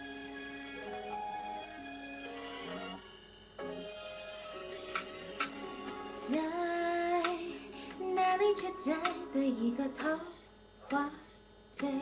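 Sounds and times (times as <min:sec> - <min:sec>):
pop instrumental backing track: 0:00.0 - 0:11.1.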